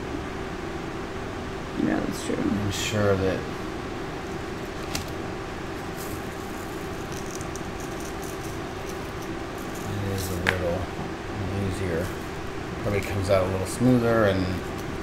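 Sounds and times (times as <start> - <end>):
steady background hum: 0.0 - 15.0.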